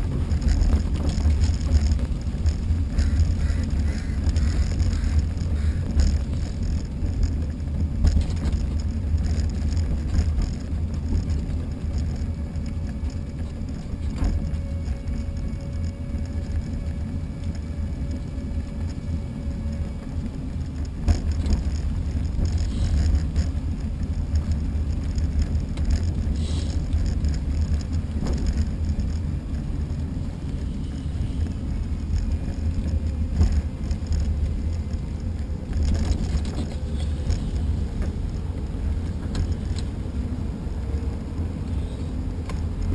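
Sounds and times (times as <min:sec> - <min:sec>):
faint thin whine: 0:00.0 - 0:42.9
wheels rolling over pavement: 0:00.0 - 0:42.9.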